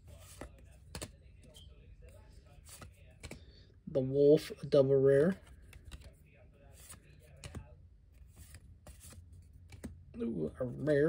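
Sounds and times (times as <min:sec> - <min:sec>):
trading cards clicking and sliding: 0:00.0 - 0:03.6, 0:05.4 - 0:10.1.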